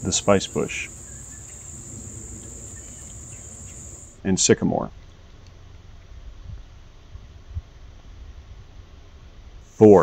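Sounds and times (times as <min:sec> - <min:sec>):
insects trilling: 0:00.0 - 0:04.2
faint low background noise: 0:00.0 - 0:10.0.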